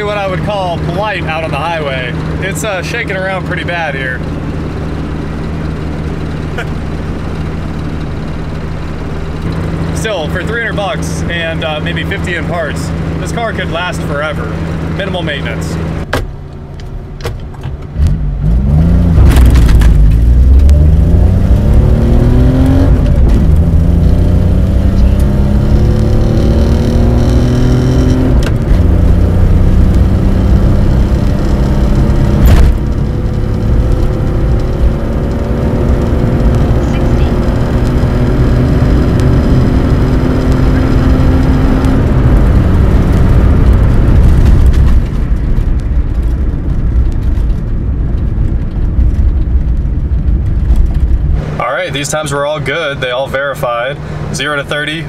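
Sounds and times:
car engine accelerating: 0:00.0 - 0:55.0.

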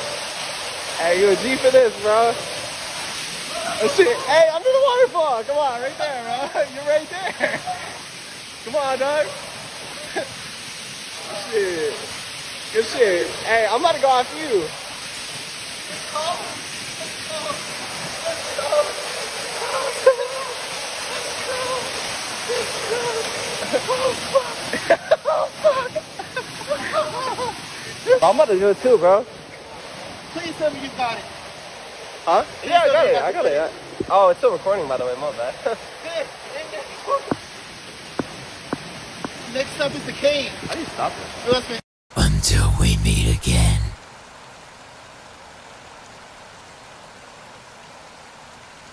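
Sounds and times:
waterfall rushing: 0:00.0 - 0:41.6
indistinct voices: 0:42.2 - 0:44.0.

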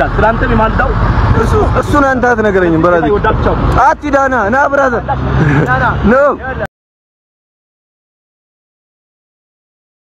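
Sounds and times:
road traffic: 0:00.0 - 0:06.7.

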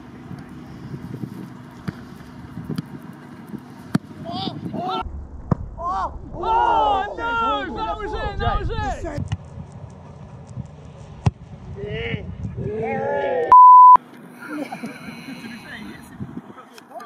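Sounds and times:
people talking: 0:05.8 - 0:09.2, 0:14.4 - 0:17.0
censor bleep: 0:13.5 - 0:14.0.

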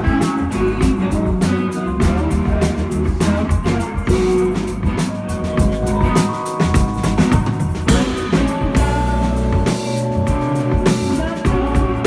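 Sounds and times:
bass guitar: 0:00.0 - 0:12.0
drum kit: 0:00.0 - 0:12.0
electric guitar: 0:00.0 - 0:12.0.

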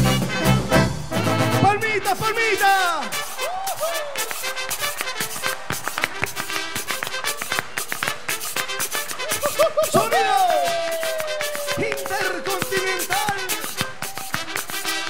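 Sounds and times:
brass band playing: 0:00.0 - 0:15.0
timbales and cowbell beat: 0:02.7 - 0:15.0.

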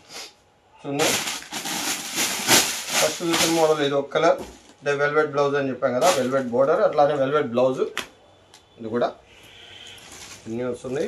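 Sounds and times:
rustling of net fabric: 0:01.0 - 0:03.8.

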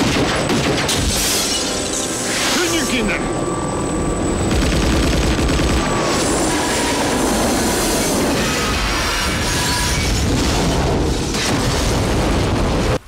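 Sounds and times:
helicopter engine and rotors: 0:01.5 - 0:09.4.

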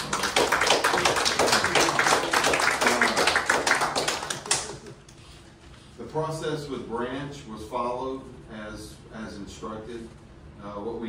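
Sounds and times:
small group applauding: 0:00.0 - 0:05.1.

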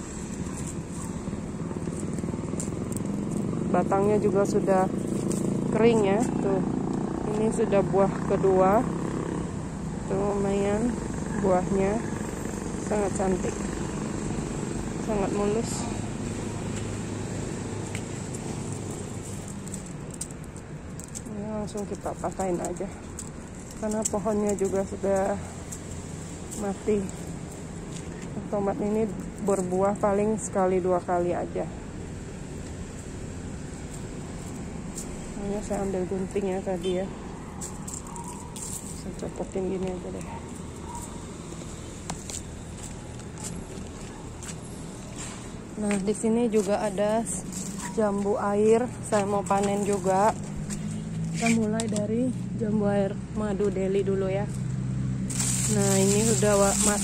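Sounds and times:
outdoor background noise: 0:00.0 - 0:57.0
garden scissors clicking: 0:17.9 - 0:27.7, 0:49.2 - 0:52.1.

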